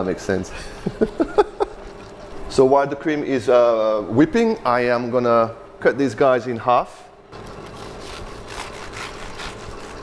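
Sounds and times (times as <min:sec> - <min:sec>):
knife sawing through pastry: 0:07.6 - 0:10.0.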